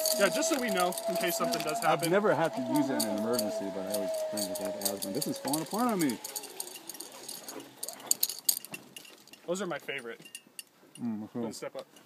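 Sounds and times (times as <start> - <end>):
zipline gear clicking and clinking: 0.0 - 11.1.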